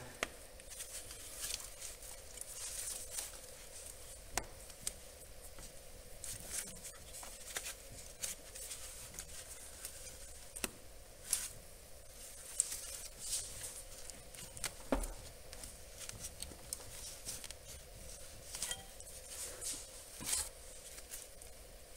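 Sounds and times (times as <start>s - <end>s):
faint rustling: 0.5s - 21.9s.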